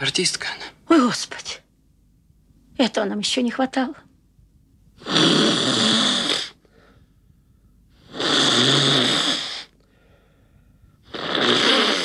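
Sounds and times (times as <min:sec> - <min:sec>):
man snoring loudly: 0:05.0 - 0:06.6, 0:08.0 - 0:09.7, 0:11.0 - 0:12.0.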